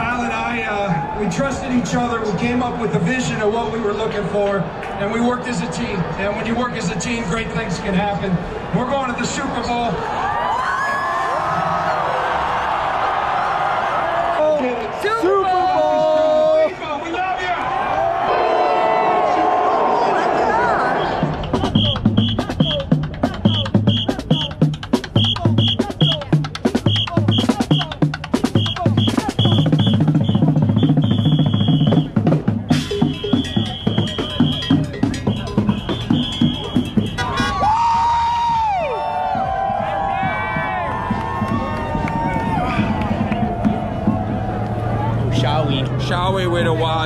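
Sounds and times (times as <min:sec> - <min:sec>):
drum kit and bucket drumming: 0:21.2 - 0:44.6.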